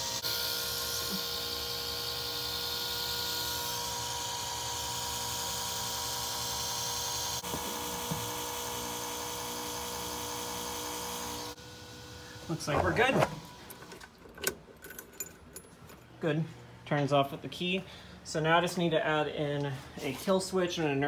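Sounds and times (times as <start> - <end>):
electric fuel pump buzzing whine: 0.0 - 16.0.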